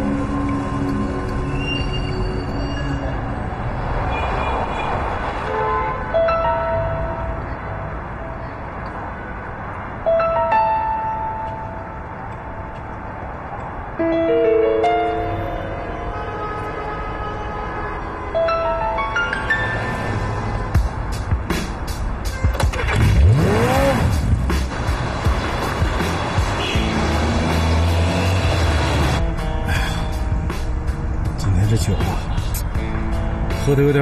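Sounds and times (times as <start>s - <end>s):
background music: 0.0s - 3.8s, 6.0s - 34.0s
distant traffic: 0.0s - 34.0s
faint background music: 22.5s - 34.0s
motorcycle engine revving: 22.8s - 29.2s.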